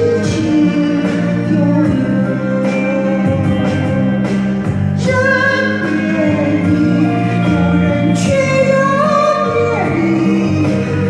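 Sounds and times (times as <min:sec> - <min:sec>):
recorded backing track: 0:00.0 - 0:11.0
woman singing a ballad: 0:00.0 - 0:11.0.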